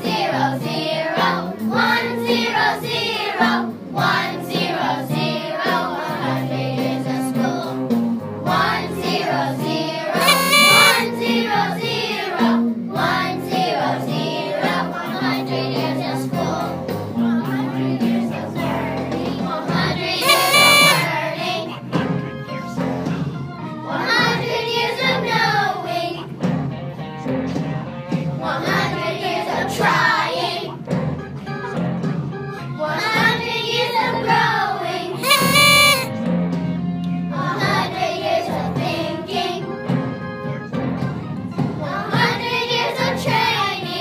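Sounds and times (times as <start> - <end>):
backing music: 10.2 - 11.1, 20.2 - 21.1, 35.2 - 36.1.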